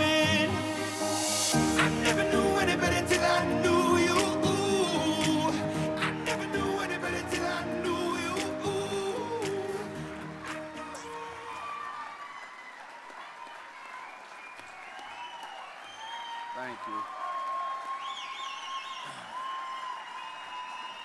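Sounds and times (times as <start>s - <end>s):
music: 0.0s - 11.7s
audience applauding: 0.0s - 21.0s
cheers and high whistles: 11.3s - 21.0s.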